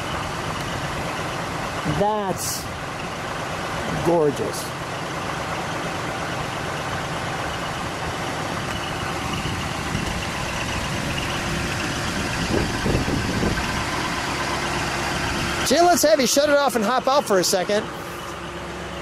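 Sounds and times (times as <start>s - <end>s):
car engine running at low speed: 0.0s - 19.0s.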